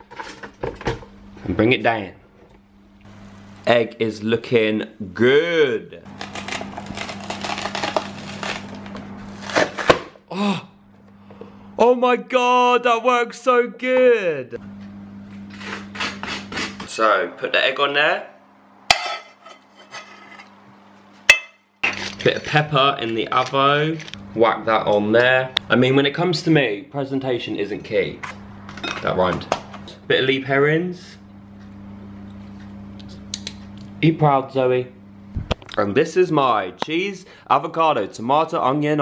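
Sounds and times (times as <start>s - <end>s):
steady low hum: 0.0s - 39.0s
kitchen appliance humming: 6.1s - 10.1s.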